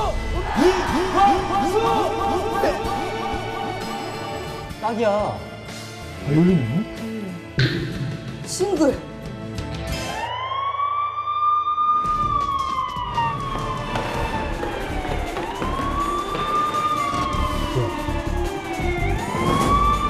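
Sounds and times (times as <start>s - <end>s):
siren wailing: 10.0s - 20.0s.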